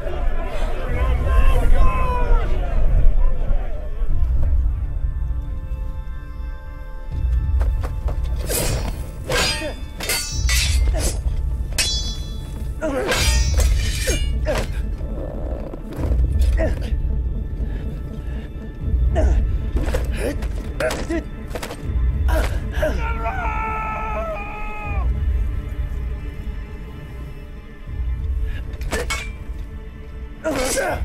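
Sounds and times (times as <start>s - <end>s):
dramatic score music: 0.0s - 31.0s
metal sword clashes: 8.5s - 14.7s, 28.8s - 29.5s.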